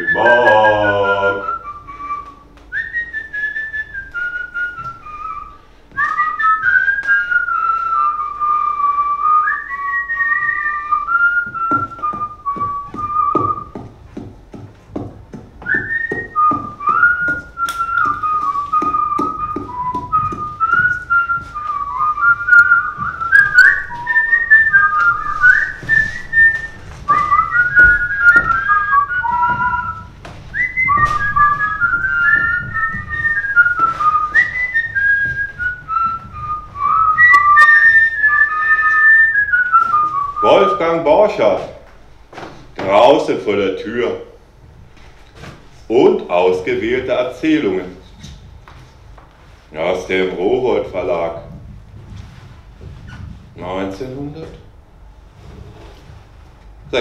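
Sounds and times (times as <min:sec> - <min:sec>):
person whistling a tune: 0:00.0 - 0:13.9, 0:15.6 - 0:41.0.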